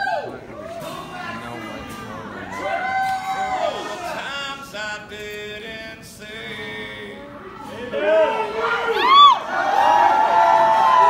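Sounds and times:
audience cheering and whooping: 0.0 - 0.9, 2.5 - 4.2, 8.0 - 11.0
loud rising and falling whoop: 8.8 - 11.0.

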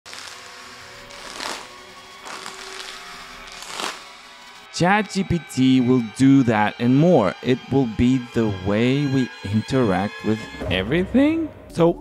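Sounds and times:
soft background music: 0.1 - 12.0
plastic packet rustling: 1.1 - 4.0.

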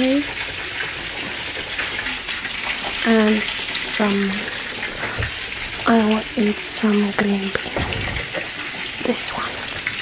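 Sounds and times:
meat sizzling in oil: 0.0 - 10.0.

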